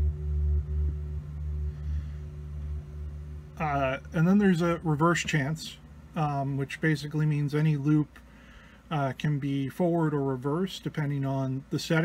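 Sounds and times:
faint steady high tone: 0.0s - 8.1s
low humming drone loop: 0.0s - 12.0s.

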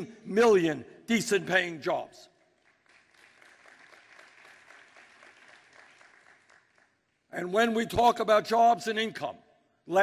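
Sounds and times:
faint audience applause: 2.5s - 7.3s.

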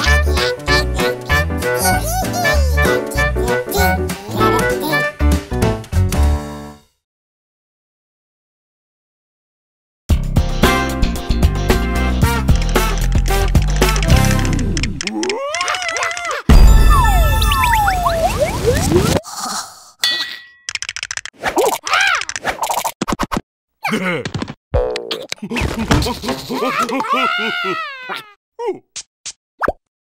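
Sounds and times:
squeaky gibberish character cries: 0.0s - 5.1s, 15.0s - 18.0s, 21.8s - 22.3s, 26.5s - 28.8s
upbeat cartoon music: 0.0s - 6.8s, 10.1s - 15.0s, 15.8s - 19.2s
loud crash: 16.5s - 18.1s.

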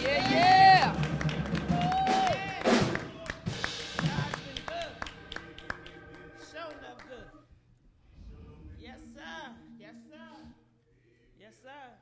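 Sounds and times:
hand claps: 0.0s - 7.3s.

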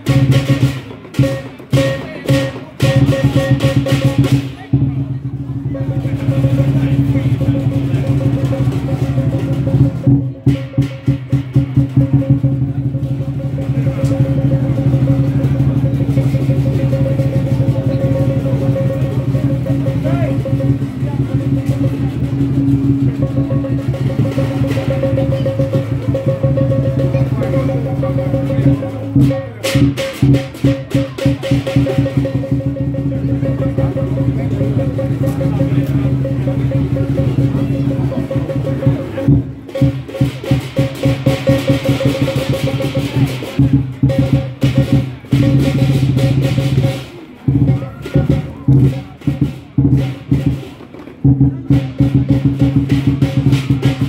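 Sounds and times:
drum cymbal and gong percussion: 0.0s - 54.0s.

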